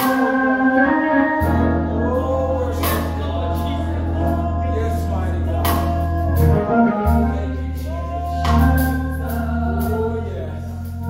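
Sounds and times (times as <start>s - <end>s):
gospel singing voices: 0.0s - 11.0s
organ: 0.0s - 11.0s
deep sustained bass notes: 0.7s - 11.0s.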